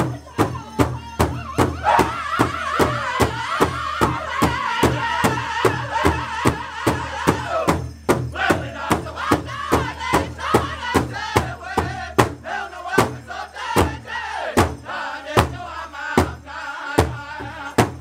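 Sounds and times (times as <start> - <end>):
drum group singing: 0.0 - 18.0
large drum steady beat: 0.0 - 18.0.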